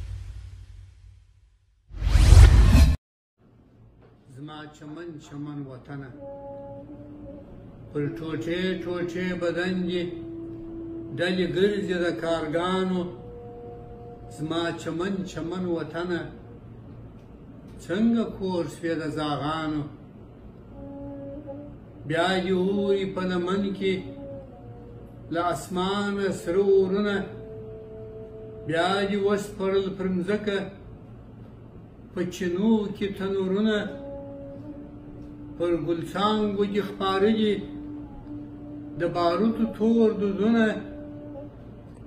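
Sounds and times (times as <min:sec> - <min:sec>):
whoosh sound effect: 0:01.9 - 0:03.0
faint soft hum: 0:03.4 - 0:42.0.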